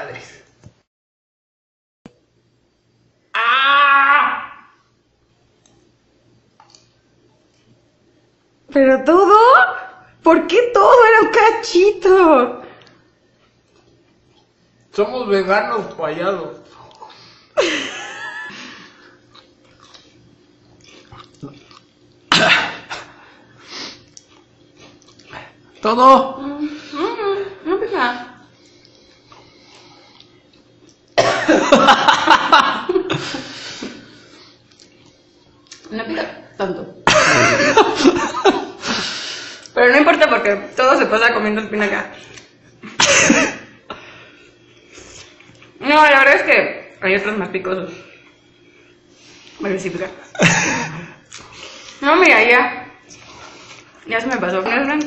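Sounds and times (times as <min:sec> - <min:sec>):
woman coughing: 0:22.3 - 0:23.1, 0:31.2 - 0:31.8, 0:37.1 - 0:38.2, 0:43.0 - 0:43.7, 0:50.3 - 0:51.2.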